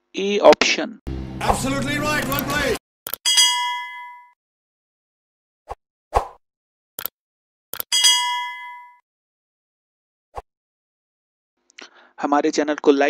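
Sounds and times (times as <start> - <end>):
electronic ding chime: 3.3 - 4.4, 7.9 - 9.0.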